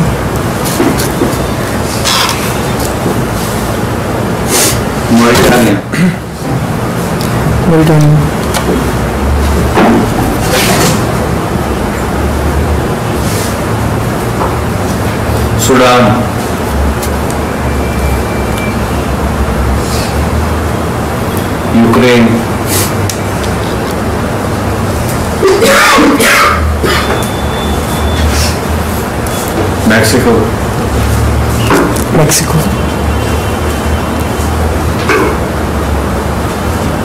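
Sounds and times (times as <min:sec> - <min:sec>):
steady low hum with hiss: 0:00.0 - 0:37.0.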